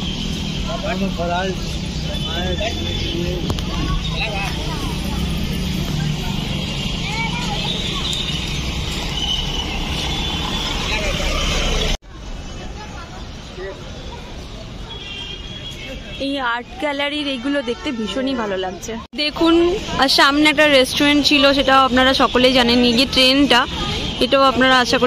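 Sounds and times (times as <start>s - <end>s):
distant voices and chatter: 0.0s - 25.0s
road traffic: 0.0s - 25.0s.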